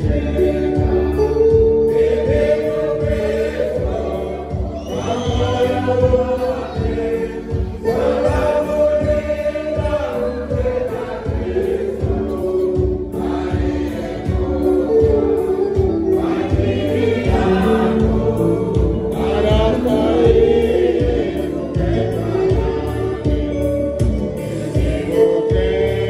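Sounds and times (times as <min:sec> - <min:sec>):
choir singing a hymn: 0:00.0 - 0:26.0
keyboard accompaniment: 0:00.0 - 0:26.0.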